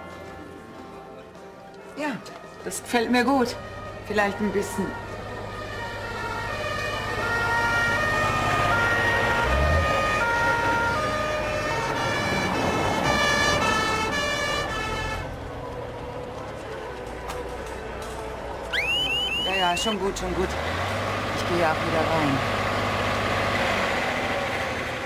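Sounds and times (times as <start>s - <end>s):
emergency vehicle sirens: 3.2s - 25.0s.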